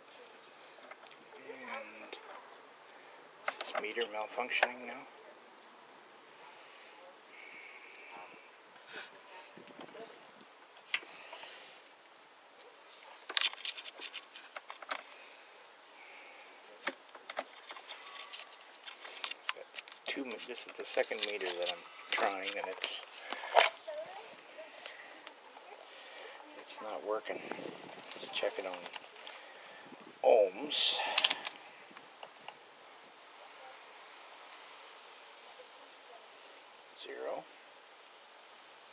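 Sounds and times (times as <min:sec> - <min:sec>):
light scraping: 0:12.6 - 0:15.4, 0:16.1 - 0:29.6.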